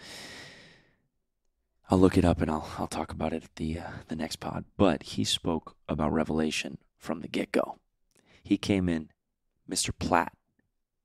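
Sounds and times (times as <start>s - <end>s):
man speaking: 8.5s - 10.4s.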